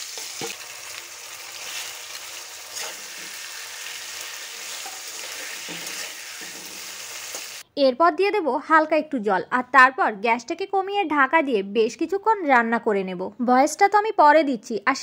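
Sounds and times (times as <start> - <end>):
crab sizzling in hot oil: 0.0 - 7.6
metal spatula scraping a pan: 1.6 - 7.6.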